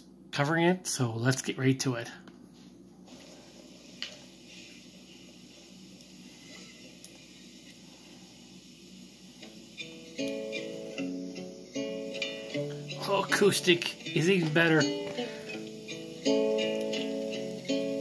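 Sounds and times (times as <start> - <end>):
acoustic guitar picked notes: 9.8 - 18.0.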